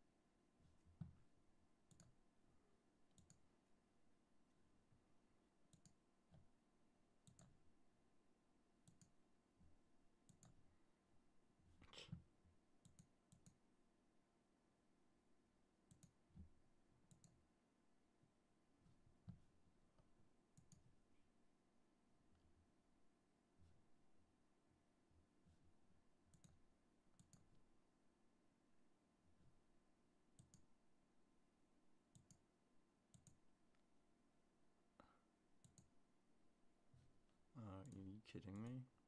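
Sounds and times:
faint computer mouse clicks: 1.9s - 2.2s, 3.1s - 3.4s, 5.7s - 6.4s, 7.2s - 7.6s, 8.8s - 9.2s, 12.8s - 13.6s, 15.9s - 16.2s, 17.1s - 17.4s, 26.3s - 27.5s, 30.4s - 30.7s, 32.1s - 32.4s, 33.1s - 33.4s, 35.0s - 35.9s.

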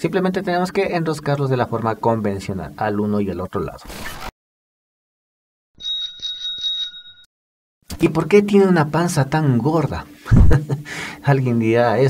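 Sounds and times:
bicycle bell trill: 5.8s - 7.3s.

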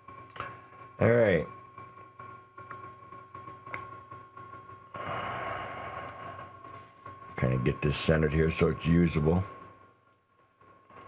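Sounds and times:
faint high-pitched hum: 0.0s - 11.0s
hiss: 5.0s - 6.6s.

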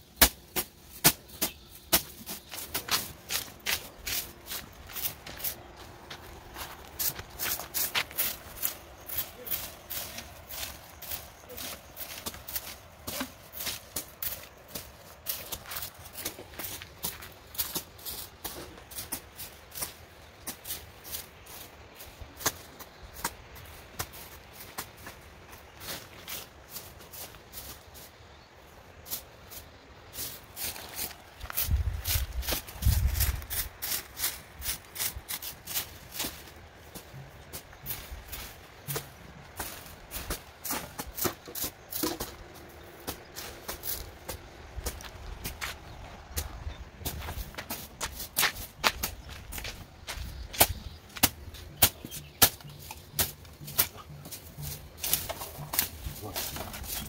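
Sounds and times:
hand tools scraping dirt: 0.0s - 28.1s, 28.9s - 57.0s.

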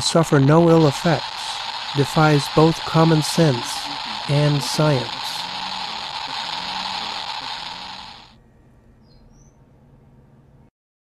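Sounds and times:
geiger counter crackling: 0.0s - 8.3s.

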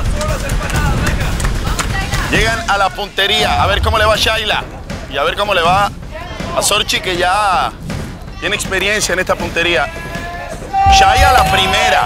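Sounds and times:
low background rumble: 1.1s - 6.2s.

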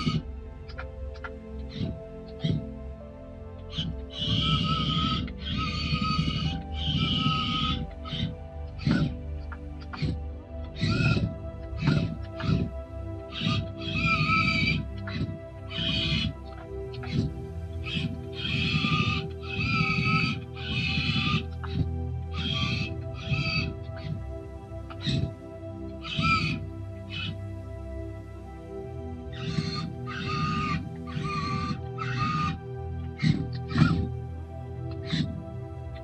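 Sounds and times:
background music: 0.0s - 36.0s.

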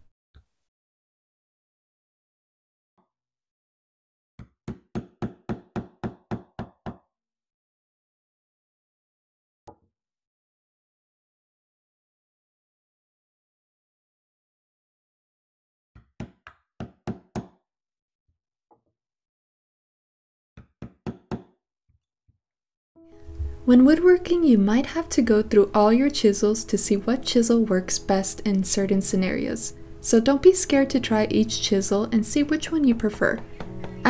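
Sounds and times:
hammer striking chisel into wood: 4.4s - 7.0s, 20.6s - 21.5s, 33.4s - 34.0s.

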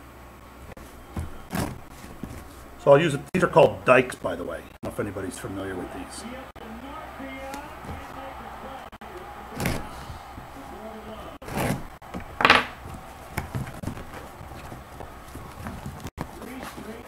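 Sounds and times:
cardboard rustling and scraping: 0.7s - 2.9s, 9.5s - 10.7s, 11.3s - 17.0s.

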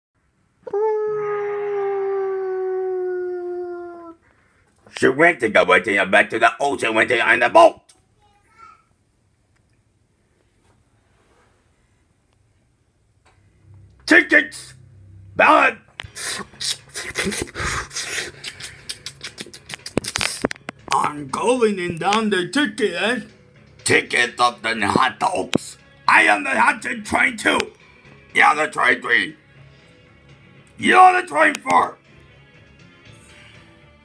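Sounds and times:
long howl sinking in pitch: 0.7s - 4.2s.

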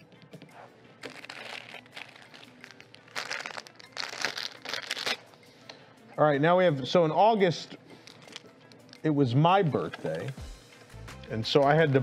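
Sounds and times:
plastic packaging rustling: 1.0s - 5.2s.

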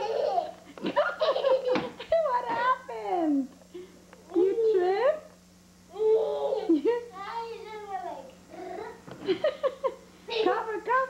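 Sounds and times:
child laughing and vocalizing: 0.0s - 2.2s, 5.9s - 7.2s, 8.5s - 9.0s.

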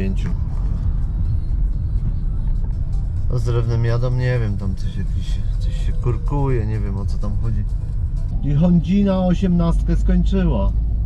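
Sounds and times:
car engine rumble: 0.0s - 11.0s
road noise inside car: 0.0s - 11.0s.

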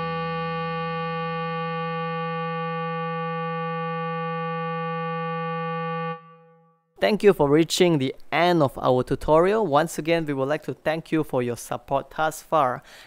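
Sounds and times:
bass clarinet long note: 0.0s - 6.9s.

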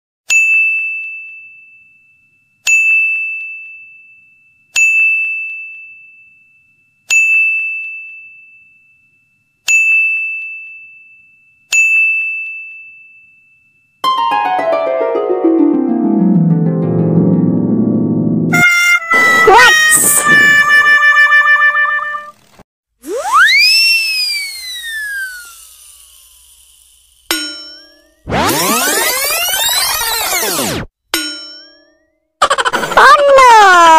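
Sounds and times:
cartoon boing sliding down: 18.5s - 22.3s, 23.0s - 24.0s, 28.3s - 30.9s.

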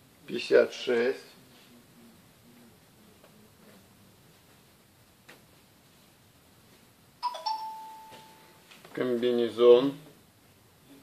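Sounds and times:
two-note electronic chime: 7.2s - 8.6s.

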